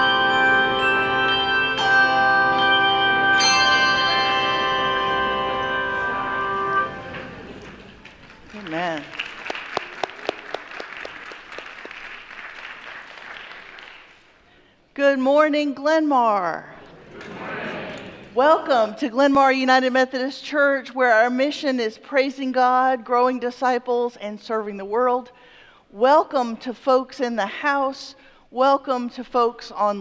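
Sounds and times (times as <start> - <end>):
handbell choir ringing a chord: 0.0 - 7.4
light applause: 7.2 - 14.5.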